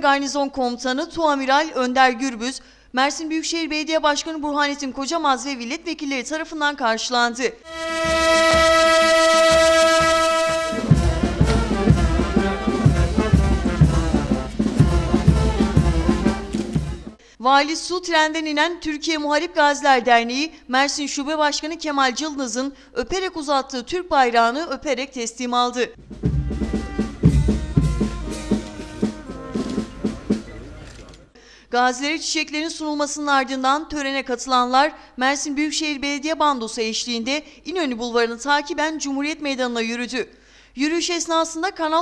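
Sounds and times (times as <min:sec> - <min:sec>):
brass marching band: 0:07.7 - 0:17.2, 0:26.0 - 0:31.0
long horn note: 0:07.7 - 0:17.2, 0:26.0 - 0:30.4
bass drum beat: 0:07.8 - 0:17.2, 0:26.0 - 0:30.5.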